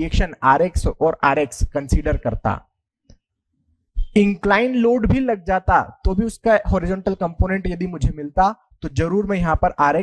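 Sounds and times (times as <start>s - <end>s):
man speaking: 0.0s - 2.7s, 4.1s - 10.0s.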